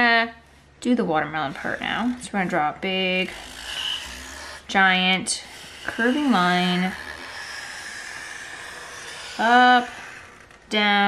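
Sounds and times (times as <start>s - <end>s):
marker scratching on paper: 1.4s - 10.6s.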